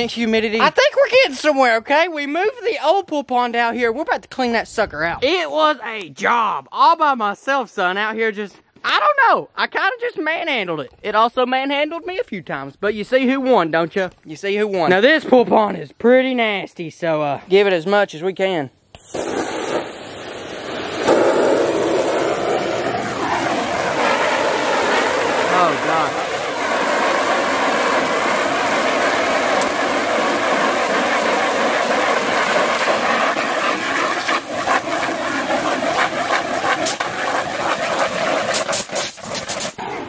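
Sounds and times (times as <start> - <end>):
water jet spraying on vinyl: 19.0 - 39.8.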